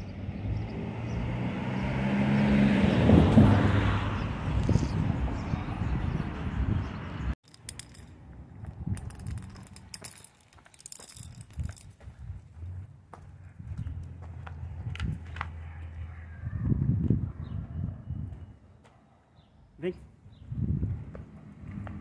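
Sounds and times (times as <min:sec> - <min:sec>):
light jangling rattle: 0:07.5 - 0:12.8
handheld camera rustling: 0:07.6 - 0:12.9.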